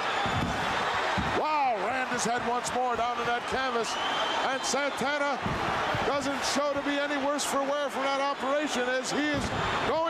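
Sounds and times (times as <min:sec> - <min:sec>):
arena crowd noise: 0:00.0 - 0:10.0
thuds on ring canvas: 0:05.4 - 0:06.1.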